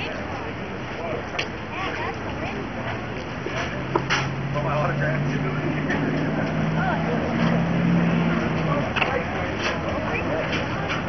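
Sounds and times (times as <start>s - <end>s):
voices talking: 0.0s - 11.0s
truck engine revving: 3.0s - 11.0s.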